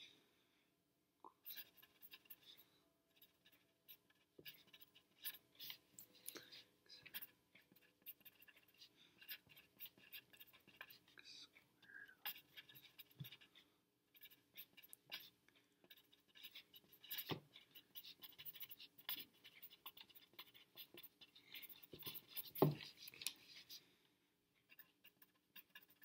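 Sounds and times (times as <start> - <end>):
pencil scratching on paper: 1.4 - 23.9, 24.6 - 26.0.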